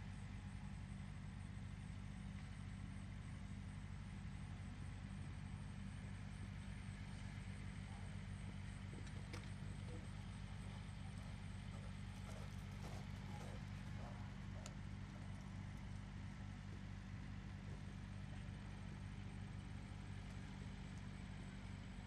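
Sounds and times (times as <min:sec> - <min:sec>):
low outdoor hum: 0:00.0 - 0:22.0
faint distant voices: 0:07.8 - 0:15.2.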